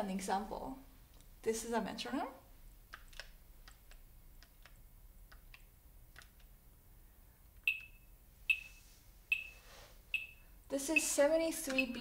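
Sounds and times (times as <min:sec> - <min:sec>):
metronome high beeps: 0:07.7 - 0:11.2.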